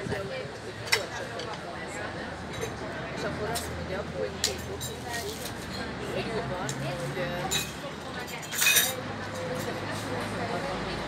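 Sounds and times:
clinking tableware: 7.4s - 9.7s.

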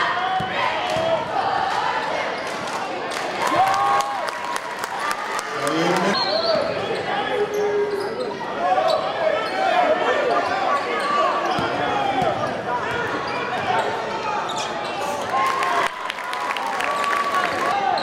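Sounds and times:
crowd voices and shouts: 0.0s - 18.0s
sneakers squeaking: 10.4s - 15.2s.

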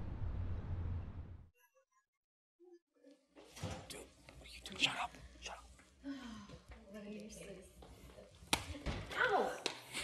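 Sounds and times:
hushed whispering voices: 3.9s - 6.1s.

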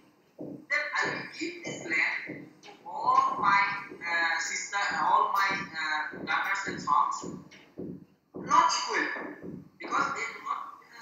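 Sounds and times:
person talking over video call: 0.7s - 7.6s, 8.4s - 11.0s.

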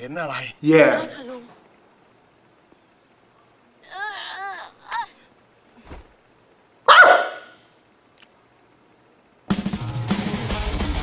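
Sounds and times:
dog barking: 6.9s - 7.6s.

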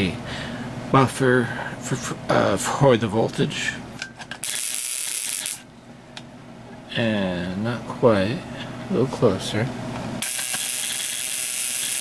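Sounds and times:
electric sparks buzzing: 4.4s - 5.6s, 10.2s - 12.0s.

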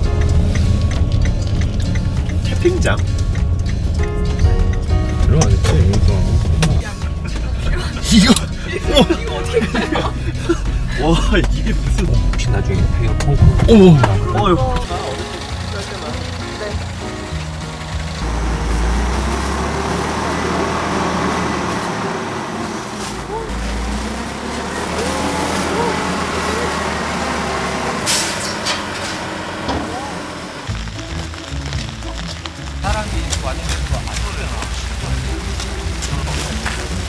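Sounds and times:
garbage truck engine revving: 0.0s - 37.0s.

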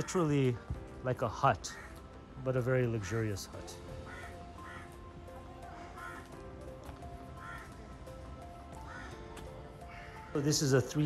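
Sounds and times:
crows cawing: 0.0s - 0.7s, 1.3s - 2.2s, 3.7s - 11.0s
soft background music: 0.0s - 11.0s.

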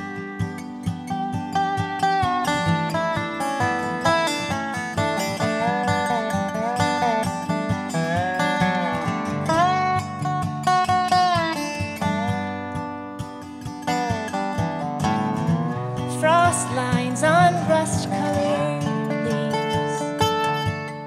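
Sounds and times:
acoustic guitar accompaniment: 0.0s - 21.0s
slide resonator guitar: 0.0s - 21.0s.

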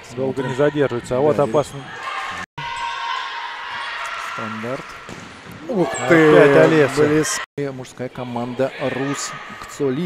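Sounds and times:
players calling: 0.3s - 7.5s.

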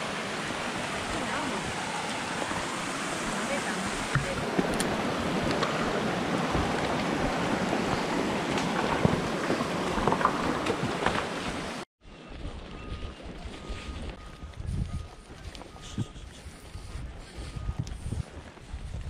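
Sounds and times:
stream rushing and splashing: 0.0s - 11.9s.

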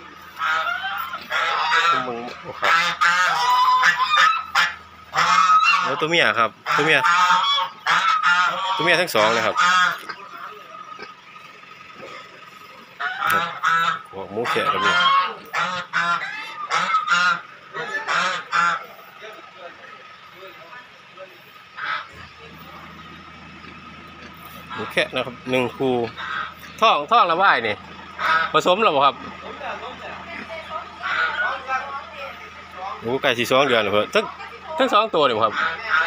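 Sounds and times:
loud pitched animal calls: 0.0s - 19.2s, 20.0s - 36.0s.

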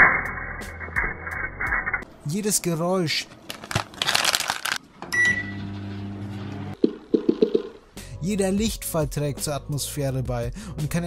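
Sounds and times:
plastic bag crinkling: 3.3s - 4.8s.

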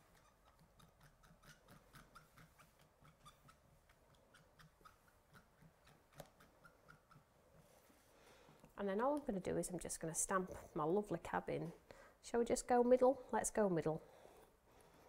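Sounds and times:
pen brush tip scratching and tapping: 0.1s - 7.3s.

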